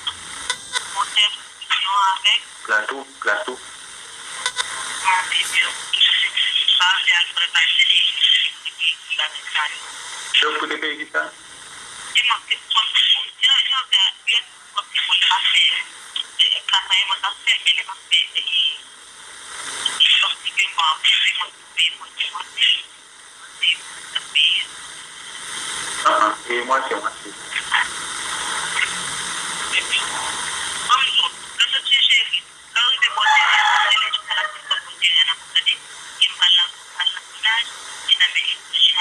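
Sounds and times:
person talking over phone line: 0.8s - 3.6s, 4.5s - 11.4s, 12.2s - 18.8s, 19.8s - 24.7s, 26.0s - 28.9s, 29.6s - 39.0s.

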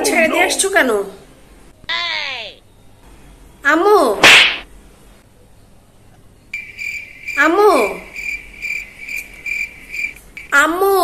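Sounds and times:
cricket chirping: 6.5s - 10.6s.

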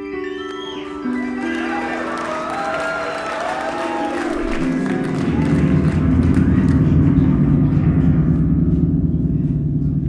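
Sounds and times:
low piano bass notes: 4.5s - 10.0s.

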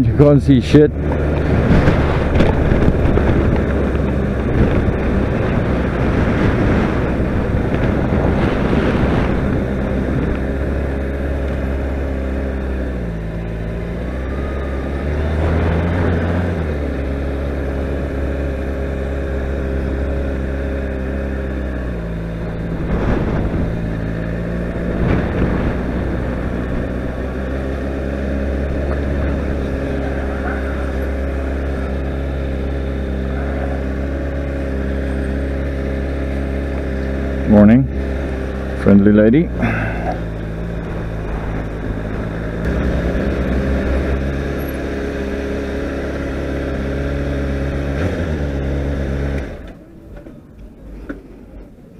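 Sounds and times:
motorcycle engine running at low revs: 0.0s - 50.8s
wind noise on microphone: 0.9s - 11.1s, 21.8s - 30.1s, 40.4s - 44.4s.

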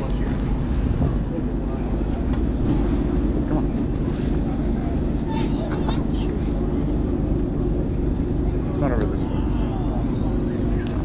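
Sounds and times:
large vehicle engine idling: 0.0s - 11.0s.

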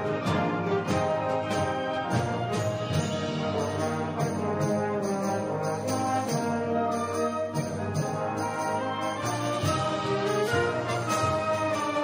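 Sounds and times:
concert band playing chords: 0.0s - 12.0s.

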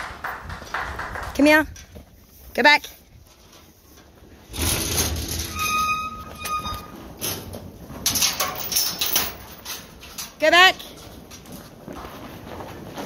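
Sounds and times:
brief squeaky tone: 5.5s - 6.9s
sheep hooves trampling on dirt: 9.5s - 13.0s.

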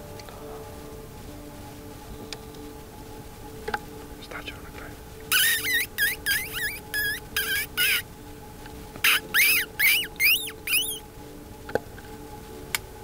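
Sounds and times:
predator call squeaking: 5.3s - 8.0s, 9.0s - 11.0s.

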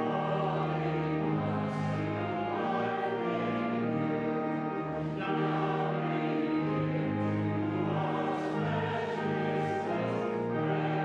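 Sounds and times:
congregation and choir singing hymn: 0.0s - 11.0s
pipe organ chords: 0.0s - 11.0s.

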